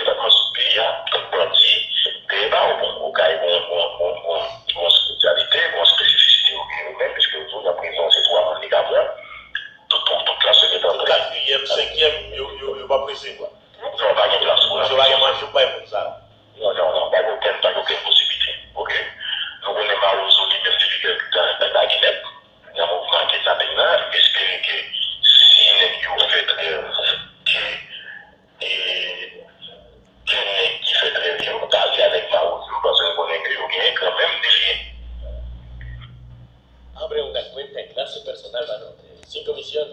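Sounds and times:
tinny speech: 0.0 - 36.0.

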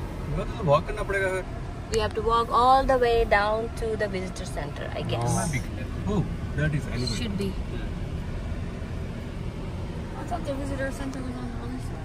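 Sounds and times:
car driving rumble: 0.0 - 12.0
person speaking: 5.0 - 5.7.

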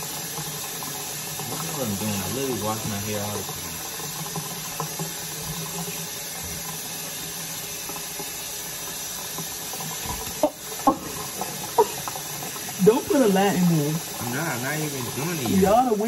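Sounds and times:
faucet water splashing: 0.0 - 16.0.

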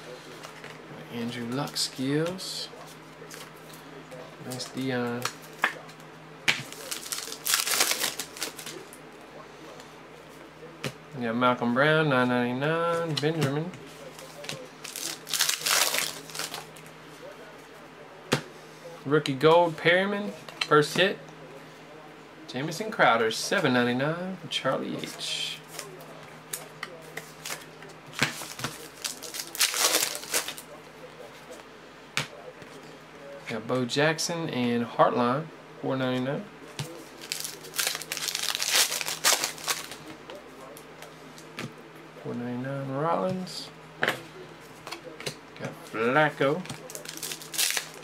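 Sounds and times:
card handling: 4.5 - 9.0, 14.1 - 16.9, 26.5 - 30.7, 36.7 - 41.6, 46.6 - 48.0
foil pack crinkling: 6.6 - 8.9, 14.2 - 16.7, 28.2 - 30.6, 37.2 - 40.1, 46.7 - 48.0.

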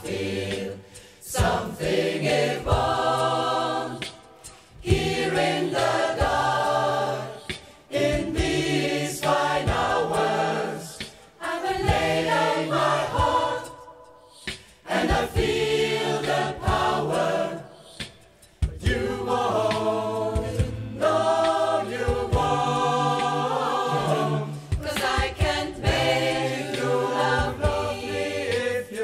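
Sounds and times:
choir singing a cappella: 0.0 - 29.0.

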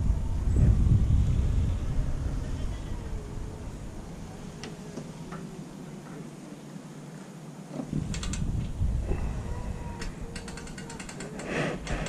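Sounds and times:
wind buffeting microphone: 0.0 - 5.6, 7.8 - 12.0.

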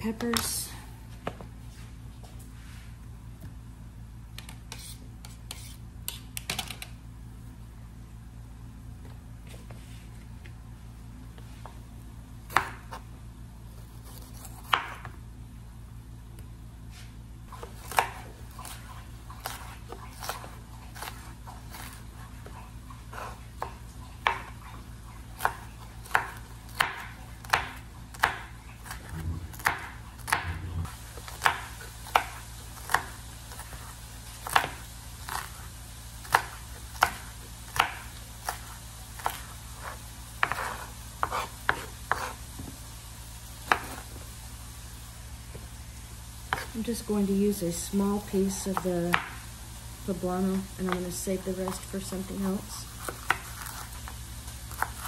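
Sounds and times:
steady low hum: 0.0 - 55.0
knife chopping on wooden board: 12.5 - 13.0, 14.0 - 15.2, 17.6 - 18.8, 19.4 - 24.6, 25.4 - 33.8, 34.4 - 35.5, 36.2 - 42.8, 43.6 - 44.0, 53.0 - 54.0.

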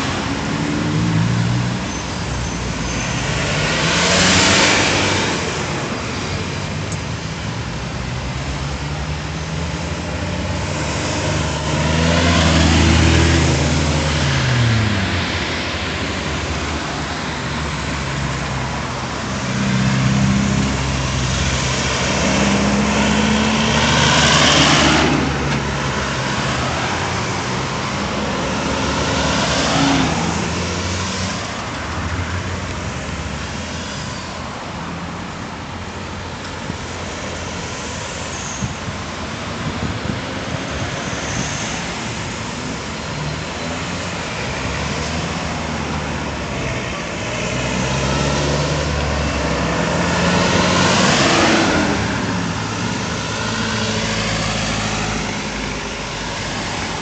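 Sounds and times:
road traffic: 0.0 - 57.0
vehicles passing close by: 0.0 - 57.0.

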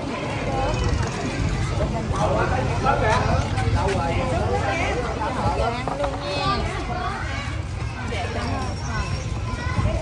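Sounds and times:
crowd of young voices chattering: 0.0 - 10.0.

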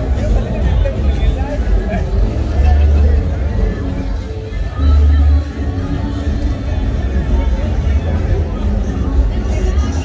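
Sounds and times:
bass-heavy music over loudspeakers: 0.0 - 10.0
people talking in the street: 0.0 - 10.0.

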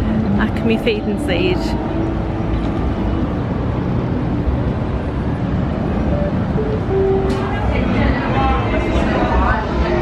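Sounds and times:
city traffic rumble: 0.0 - 10.0.

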